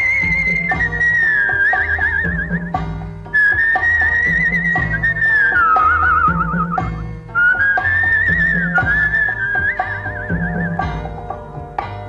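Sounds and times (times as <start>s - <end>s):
high whistle-like melody: 0.0s - 11.0s
bass and drum beat: 0.0s - 12.0s.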